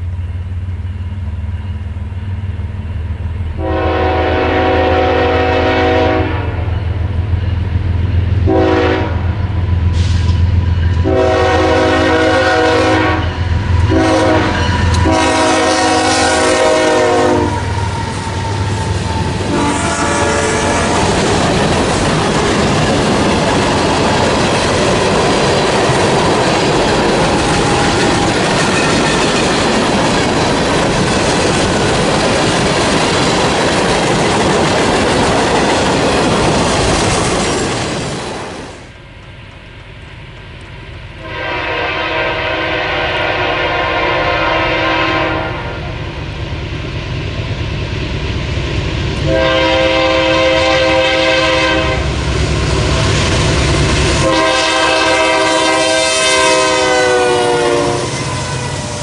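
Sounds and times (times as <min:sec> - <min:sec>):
train air horn blasts: 0:03.6 - 0:06.8, 0:08.4 - 0:21.3, 0:41.2 - 0:46.0, 0:49.2 - 0:52.2, 0:54.2 - 0:59.0
freight cars rolling on rails: 0:09.3 - 0:41.1.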